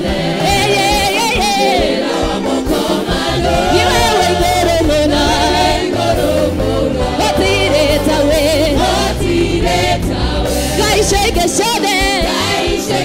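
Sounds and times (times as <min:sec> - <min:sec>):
group singing gospel song: 0:00.0 - 0:13.0
low instrumental accompaniment: 0:02.7 - 0:13.0.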